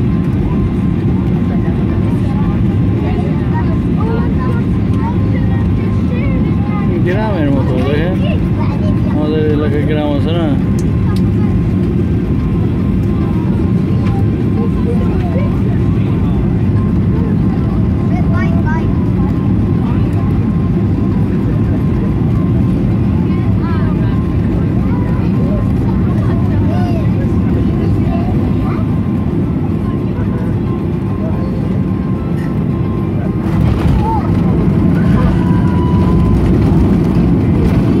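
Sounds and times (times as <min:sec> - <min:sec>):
faint passenger voices: 0:00.0 - 0:38.0
jet airliner cabin rumble: 0:00.0 - 0:38.0.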